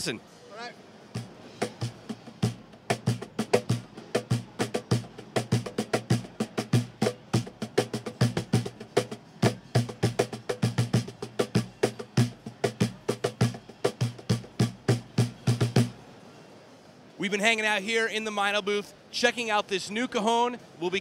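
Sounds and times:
cajon deep bass hits: 1.2s - 16.0s
cajon slaps with snare rattle: 1.2s - 16.0s.

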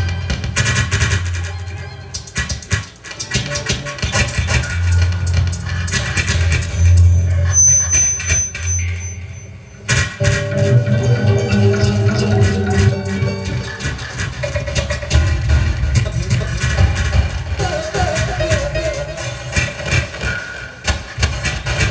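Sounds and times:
dense electronic crackling: 2.2s - 17.6s
held mid-pitched tones: 3.9s - 19.9s
low electronic throb: 4.1s - 19.4s
thin high whistling tone: 6.6s - 9.8s.

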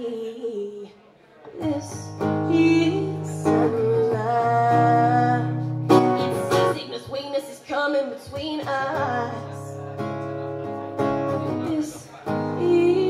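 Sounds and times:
strummed acoustic guitar: 1.5s - 13.0s.

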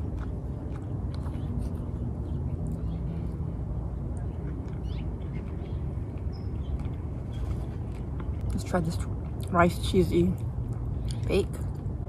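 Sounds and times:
person chewing food: 0.0s - 9.5s
low background rumble: 0.0s - 12.0s.

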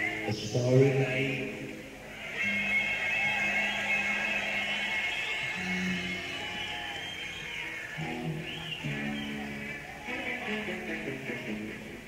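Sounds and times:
sustained electric guitar notes: 2.4s - 12.0s.

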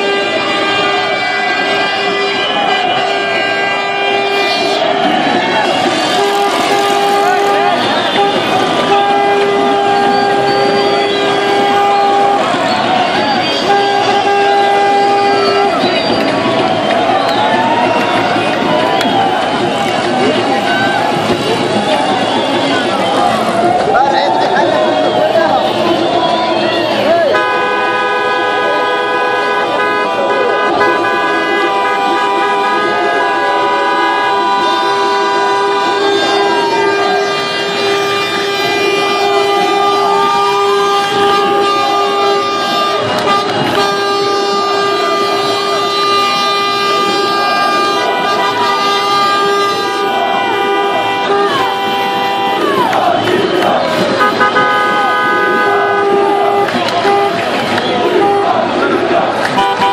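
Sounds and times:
crowd shouting and cheering: 0.0s - 59.9s.

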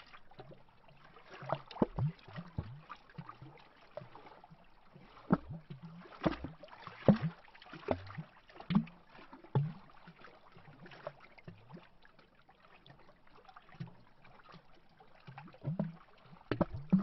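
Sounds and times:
waves lapping against tree trunk: 0.0s - 11.8s
faint water wash: 0.0s - 17.0s.

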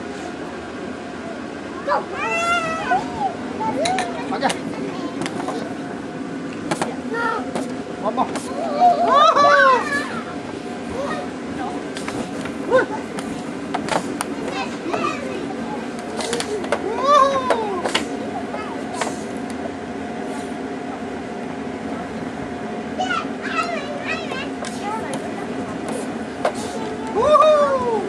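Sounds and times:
children's voices at play: 1.1s - 6.0s, 6.8s - 19.7s, 20.6s - 28.0s
child crying out: 2.2s - 3.4s, 27.0s - 28.0s
child crying: 2.2s - 3.8s, 8.7s - 10.3s, 16.8s - 17.8s, 26.8s - 28.0s
child squealing: 27.1s - 28.0s.

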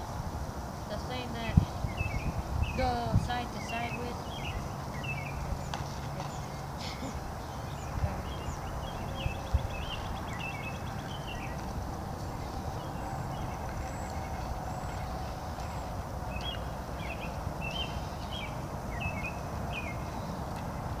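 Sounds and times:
low outdoor rumble: 0.0s - 21.0s
songbirds chirping: 0.0s - 21.0s.

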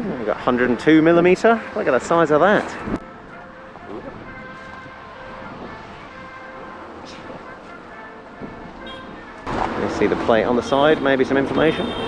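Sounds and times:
distant road traffic: 0.0s - 12.0s
wind rumble on microphone: 2.6s - 10.5s.

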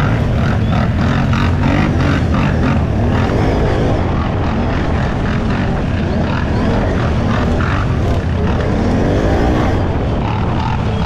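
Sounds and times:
quad engine running: 0.0s - 11.0s.

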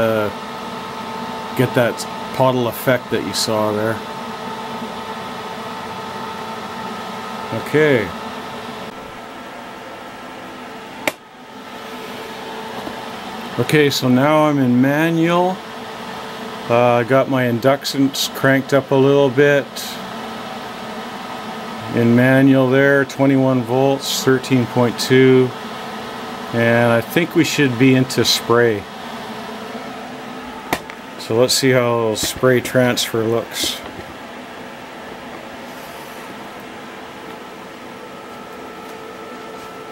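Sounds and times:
welder cooling fan humming: 0.0s - 39.9s.

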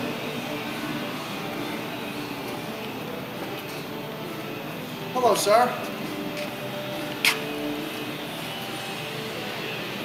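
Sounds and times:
warehouse background noise: 0.0s - 10.0s.

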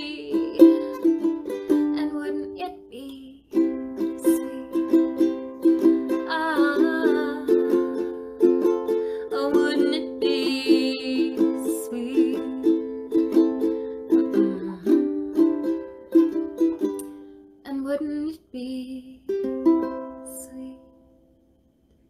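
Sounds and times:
woman singing: 0.0s - 13.5s, 14.1s - 15.7s, 17.7s - 19.4s, 20.0s - 21.0s
ukulele strumming chords: 0.0s - 17.5s, 18.7s - 21.0s.

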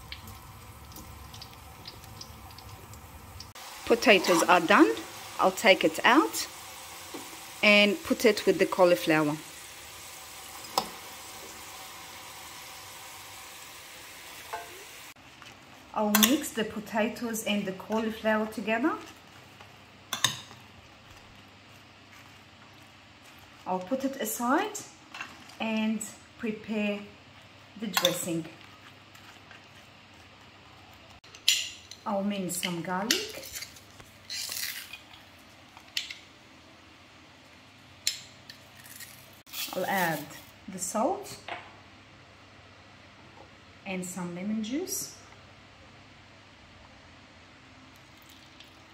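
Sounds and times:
potatoes sizzling in hot oil: 0.0s - 15.2s.

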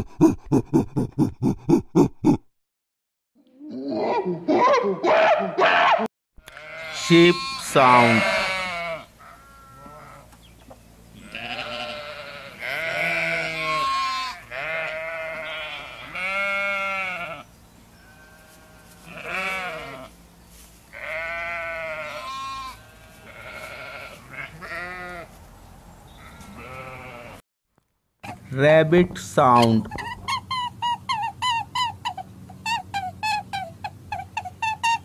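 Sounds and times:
sheep bleating: 5.6s - 10.3s, 11.2s - 20.1s, 20.9s - 25.3s, 26.2s - 27.4s.

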